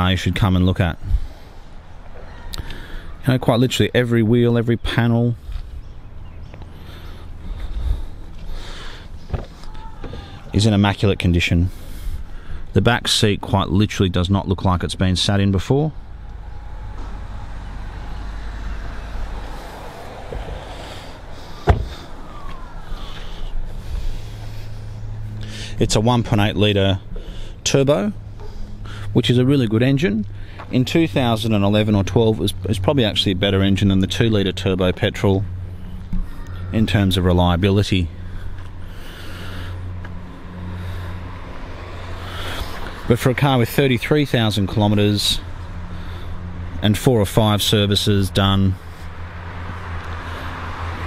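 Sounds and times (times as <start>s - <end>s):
car engine idling: 14.9s - 51.0s
car door shutting thud: 20.3s - 20.8s, 21.6s - 22.1s.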